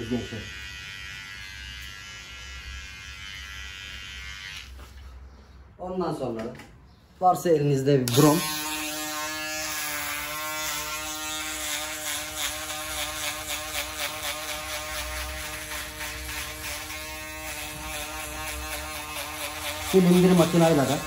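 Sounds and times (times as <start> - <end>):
electric shaver buzzing: 0.0 - 4.9, 8.1 - 21.0.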